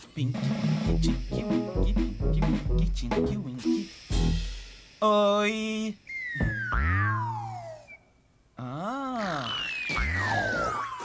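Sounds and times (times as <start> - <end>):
wavering cartoon tone: 6.0 - 8.0, 9.2 - 11.0
whistle sliding down: 6.0 - 8.1, 9.4 - 11.0.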